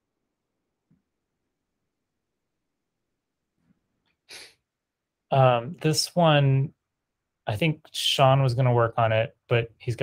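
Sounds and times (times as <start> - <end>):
short sharp breath: 4.3 - 4.6.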